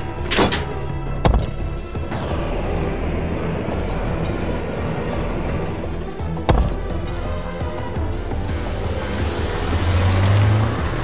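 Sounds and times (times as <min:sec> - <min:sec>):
background music: 0:00.0 - 0:11.0
steady rushing rumble: 0:00.0 - 0:11.0.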